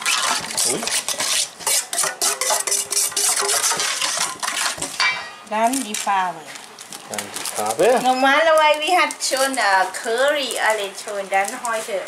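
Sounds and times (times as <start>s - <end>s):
metal spoon stirring in bowl: 0.0s - 5.5s.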